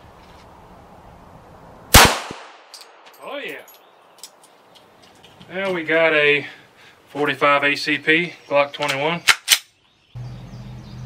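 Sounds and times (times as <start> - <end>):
pistol shot with echo: 1.9 - 3.0.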